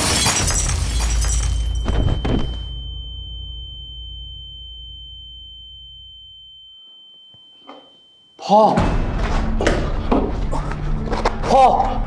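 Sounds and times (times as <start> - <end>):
high-pitched ringing tone: 0.9 - 8.8.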